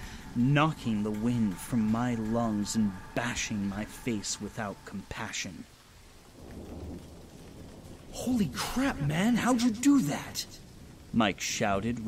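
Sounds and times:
steady rain: 0.0 - 12.0
thunder rumbling: 0.0 - 12.0.

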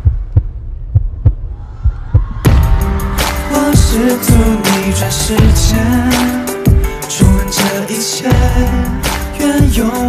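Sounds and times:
heartbeat sound effect: 0.0 - 2.9.

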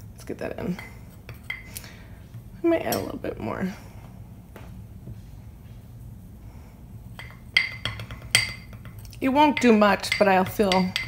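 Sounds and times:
spoon clinking glass bowl: 7.2 - 11.0.

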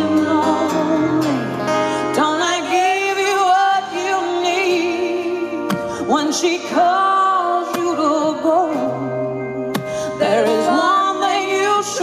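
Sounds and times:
acoustic guitar: 0.0 - 12.0
woman singing country ballad: 0.0 - 12.0.

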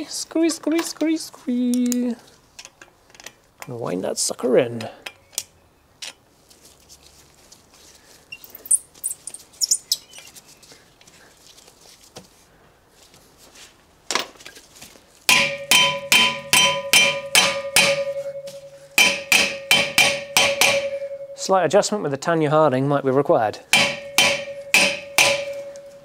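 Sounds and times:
hammer striking brake disc: 15.3 - 21.4, 23.7 - 26.0
metal disc ringing: 15.3 - 21.9, 23.7 - 26.0.

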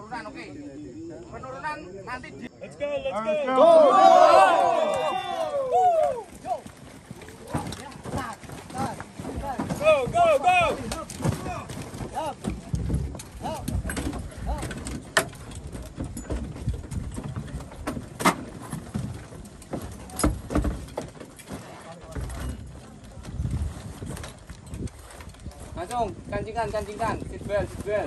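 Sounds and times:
people shouting: 2.9 - 6.8, 9.7 - 12.4
footsteps on dry dirt: 4.7 - 13.8.

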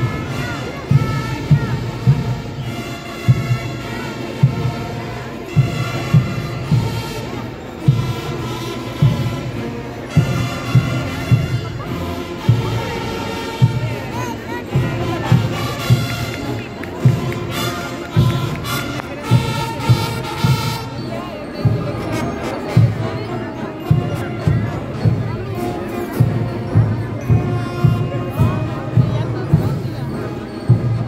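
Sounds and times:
marching band playing: 0.0 - 31.0.

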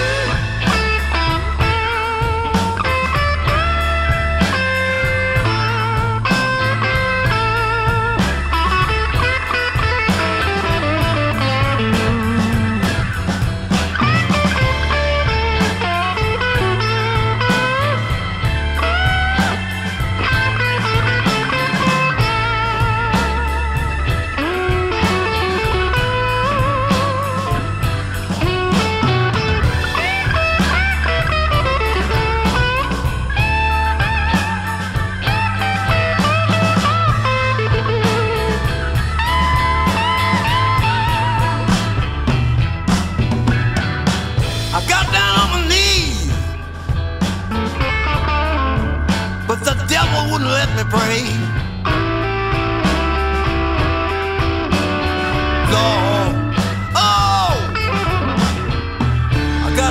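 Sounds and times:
bass line: 0.0 - 59.9
drums: 0.0 - 59.9
lead electric guitar: 0.0 - 59.9.

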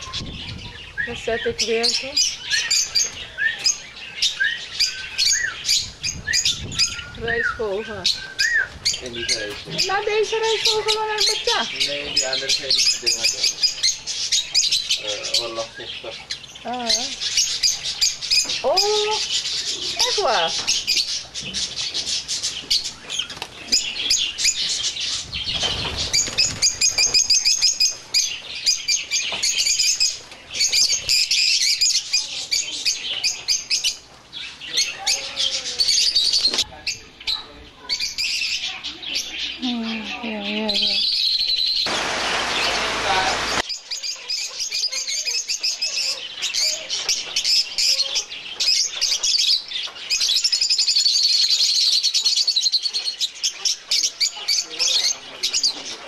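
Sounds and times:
lovebirds chattering: 0.0 - 56.0
loud rushing noise: 41.9 - 43.6.

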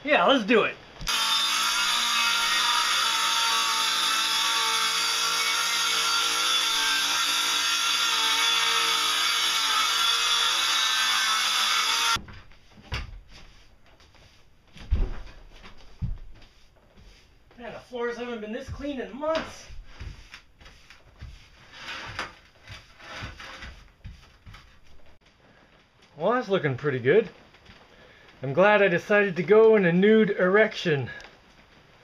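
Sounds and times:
power saw cutting plywood: 1.0 - 12.2.

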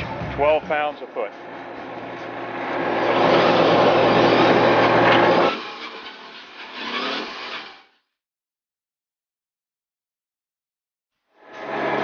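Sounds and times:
engine and hydraulic winch running: 1.1 - 8.1, 11.4 - 12.0.

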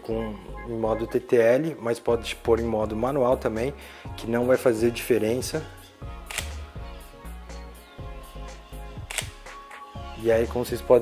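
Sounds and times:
background music with bass: 0.0 - 11.0
camera shutter clicking: 6.3 - 6.6, 9.1 - 9.5.

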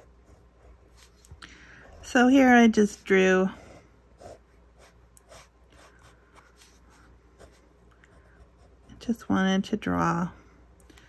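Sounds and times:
pen scratching on paper: 0.0 - 9.2.

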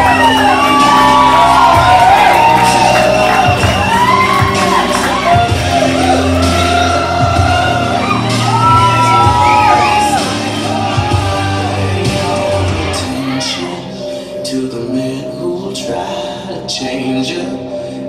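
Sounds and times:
audience whooping and shouting: 0.0 - 13.7
song over sound system: 0.0 - 18.0.

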